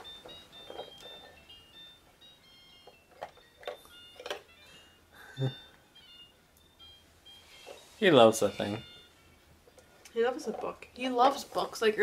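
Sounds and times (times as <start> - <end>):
electronic toy tinny beeping tune: 0.0 - 9.5.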